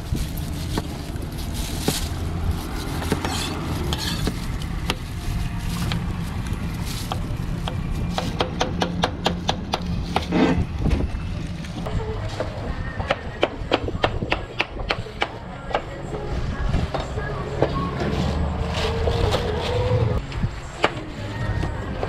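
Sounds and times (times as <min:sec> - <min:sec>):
cleaver scraping pineapple skin: 0:00.2 - 0:10.6, 0:18.0 - 0:20.2.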